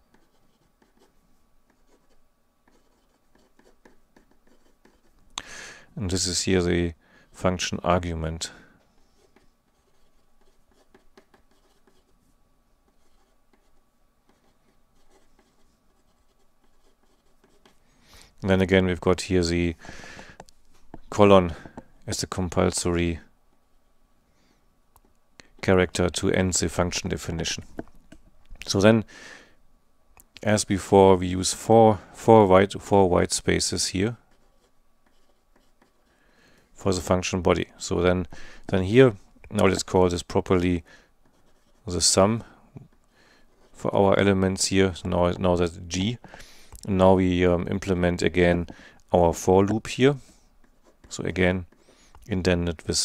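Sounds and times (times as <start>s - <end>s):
marker scratching on paper: 0.1s - 1.1s, 1.7s - 5.2s, 9.0s - 12.1s, 12.9s - 17.8s, 34.3s - 36.1s, 41.2s - 42.2s.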